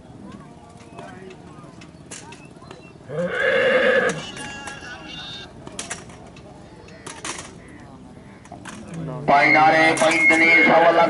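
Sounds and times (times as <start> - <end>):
horse whinnying: 3.1 - 5.4.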